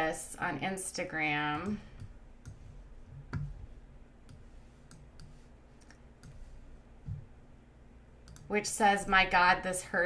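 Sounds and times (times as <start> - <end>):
faint room hum: 0.0 - 10.0
sharp computer clicks: 8.2 - 8.5.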